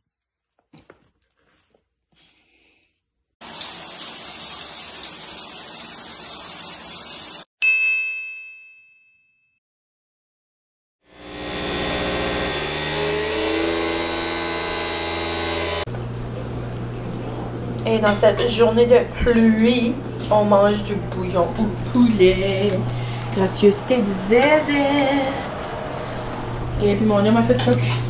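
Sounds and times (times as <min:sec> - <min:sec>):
shower water running: 0:03.4 - 0:07.5.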